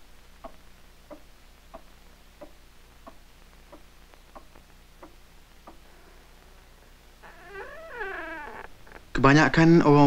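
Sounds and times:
soundtrack hiss and hum: 0:00.0 - 0:10.0.

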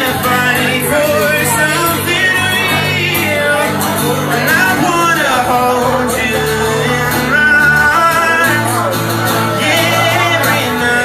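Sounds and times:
man singing: 0:00.0 - 0:11.0
strummed acoustic guitar: 0:00.0 - 0:11.0.

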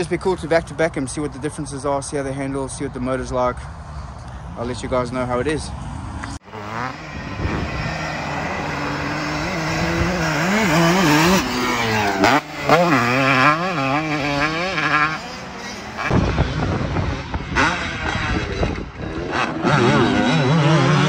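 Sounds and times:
motocross bike engine revving: 0:06.4 - 0:21.0.

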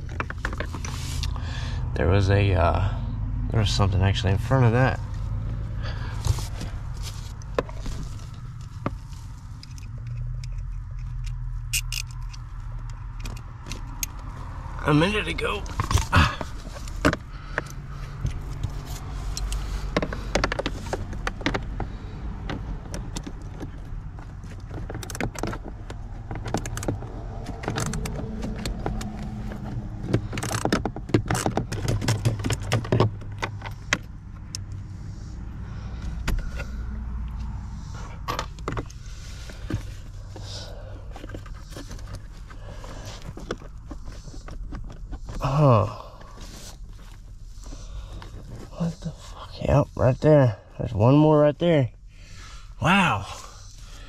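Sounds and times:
plastic and wiring rattling: 0:00.0 - 0:01.1, 0:15.3 - 0:34.5, 0:38.0 - 0:49.4
socket ratchet and tools clinking: 0:09.6 - 0:14.2.

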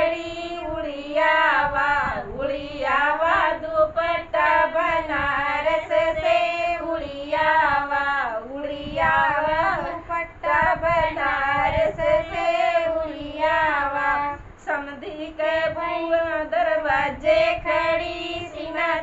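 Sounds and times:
women singing folk song: 0:00.0 - 0:19.0.

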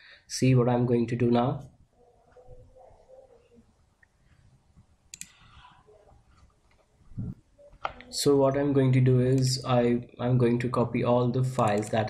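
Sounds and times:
computer mouse clicking: 0:05.1 - 0:05.7, 0:11.6 - 0:12.0.

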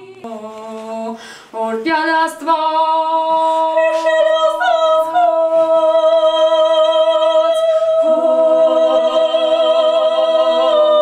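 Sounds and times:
women singing in harmony: 0:00.0 - 0:11.0.

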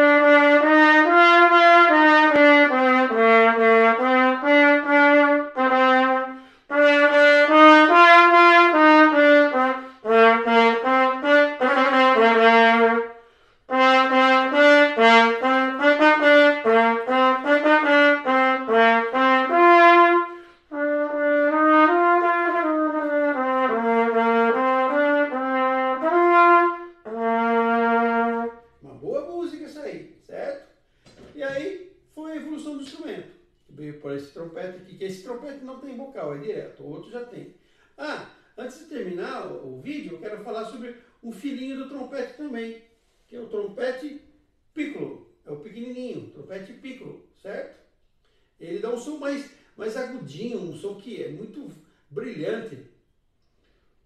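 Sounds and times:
trumpet melody: 0:00.0 - 0:28.9
man speaking: 0:28.8 - 0:30.7, 0:31.3 - 0:47.8, 0:48.6 - 0:52.9.

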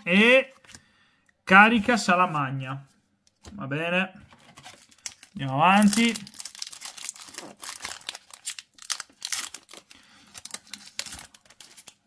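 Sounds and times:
foil pack tearing and crinkling: 0:04.6 - 0:12.0.

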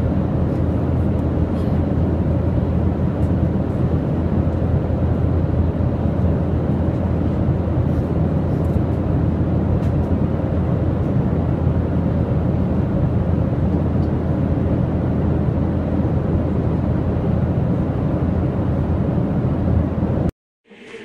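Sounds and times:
airliner cabin engine and airflow noise: 0:00.0 - 0:21.0.

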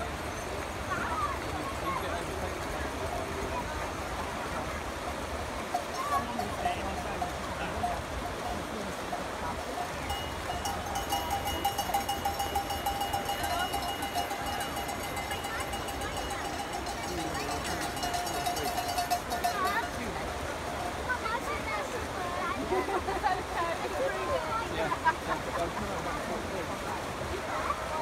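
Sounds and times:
spectators chatting: 0:00.0 - 0:28.0
bell ringing rapidly: 0:10.0 - 0:20.1.

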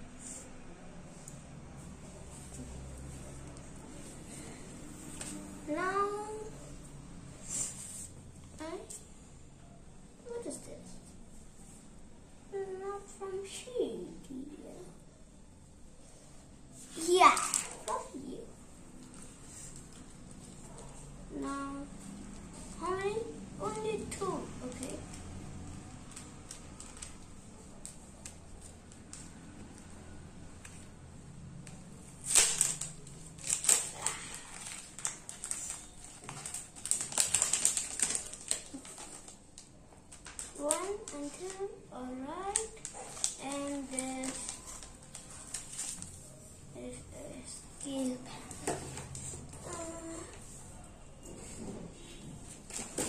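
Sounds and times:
plastic parts clicking and rustling: 0:32.2 - 0:39.4.

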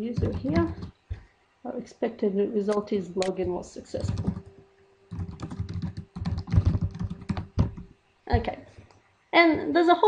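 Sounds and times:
faint steady hum: 0:00.0 - 0:10.0
computer keyboard typing: 0:00.1 - 0:01.0, 0:03.9 - 0:04.5, 0:05.1 - 0:07.9.

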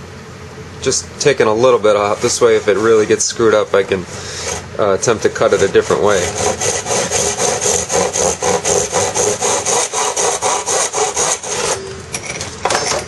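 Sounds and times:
hand saw cutting carbon tube: 0:01.9 - 0:03.5, 0:04.3 - 0:11.9.

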